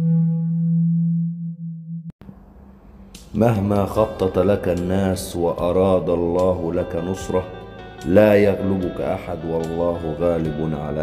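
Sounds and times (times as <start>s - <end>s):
low synthesized tone: 0.0s - 4.8s.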